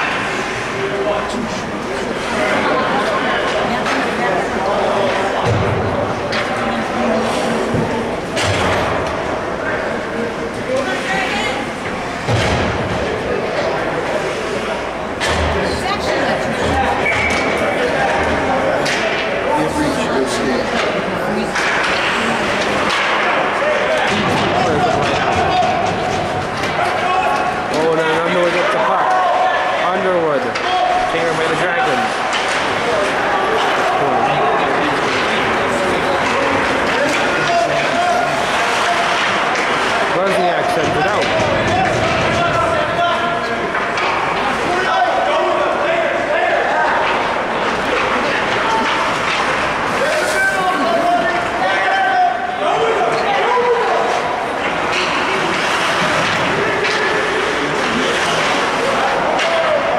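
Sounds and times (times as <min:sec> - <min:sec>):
crowd voices calling out: 0:00.0 - 0:59.9.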